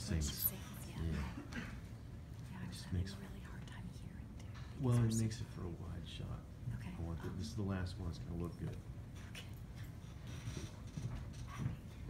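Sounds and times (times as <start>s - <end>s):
soft low talk and whispering: 0.0s - 10.3s.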